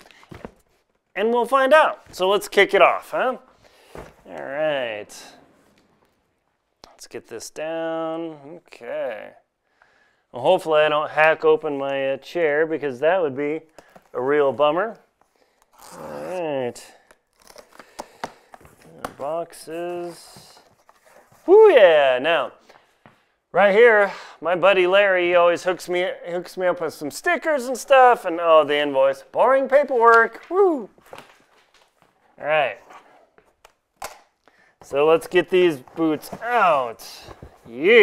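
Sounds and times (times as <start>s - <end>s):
man speaking: 1.2s - 3.5s, 4.2s - 5.6s, 6.8s - 9.5s, 15.9s - 17.0s, 18.8s - 20.7s, 21.4s - 22.6s, 23.5s - 31.0s, 32.4s - 32.8s, 34.8s - 38.0s
packing tape tearing: 17.0s - 18.4s
cardboard flaps crinkling and scraping: 35.1s - 38.0s.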